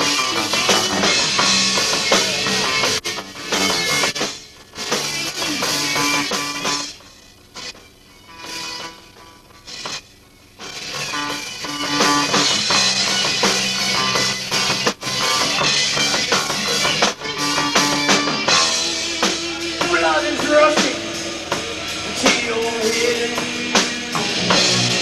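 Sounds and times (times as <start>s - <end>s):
live rock band playing: 0.0s - 7.0s, 7.6s - 10.0s, 10.6s - 25.0s.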